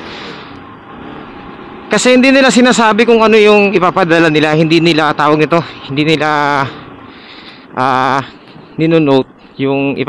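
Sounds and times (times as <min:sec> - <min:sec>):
motorcycle riding at low speed: 0:00.0 - 0:09.4.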